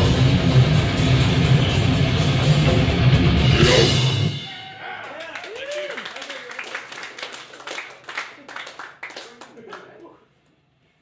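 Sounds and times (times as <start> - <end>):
audience clapping and shouting: 4.8 - 10.1.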